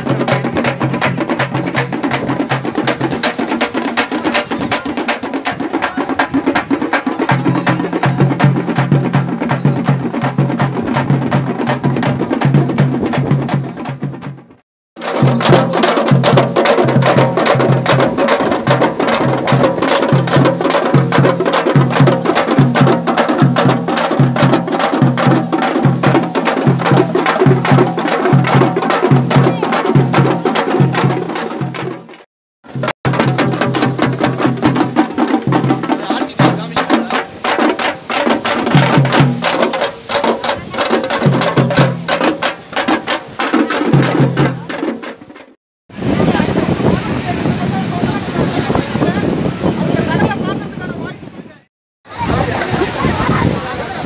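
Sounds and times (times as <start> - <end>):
frame drums beaten with sticks: 0.0 - 45.6.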